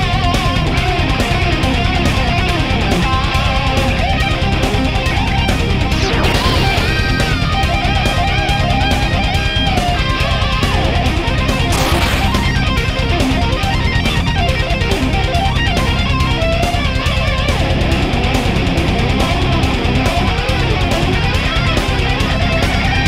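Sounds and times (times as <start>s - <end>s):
heavy metal electric guitar: 0.0s - 23.0s.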